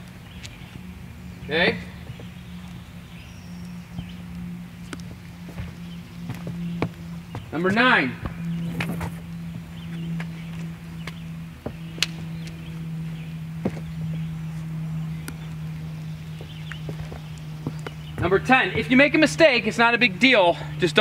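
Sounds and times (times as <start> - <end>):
steady low hum: 0.0 - 21.0
footsteps on wooden deck: 1.9 - 4.2, 4.8 - 14.8, 15.6 - 18.9.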